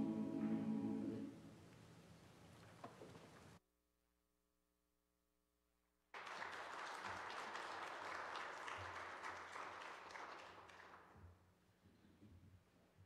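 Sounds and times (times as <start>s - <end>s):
congregation applauding: 6.2s - 11.2s.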